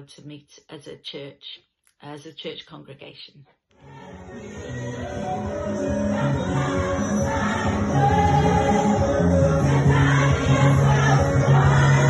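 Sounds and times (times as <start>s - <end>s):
choir singing gospel song: 3.8s - 12.0s.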